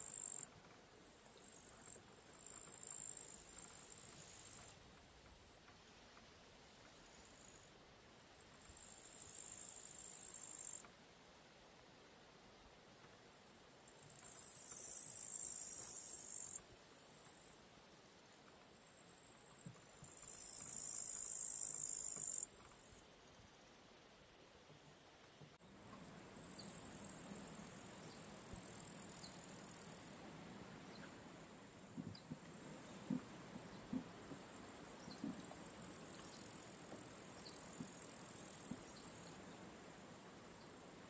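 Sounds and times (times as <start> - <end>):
insect chirring buzz: 0.0 - 0.5, 1.1 - 4.8, 6.7 - 7.7, 8.5 - 10.9, 13.2 - 17.6, 18.8 - 23.6, 25.9 - 41.0
faint low thumps: 31.9 - 35.6.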